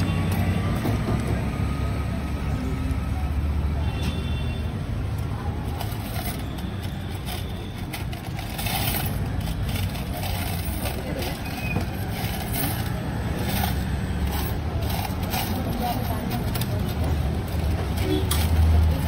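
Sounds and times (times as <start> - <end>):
low traffic rumble: 0.0 - 19.0.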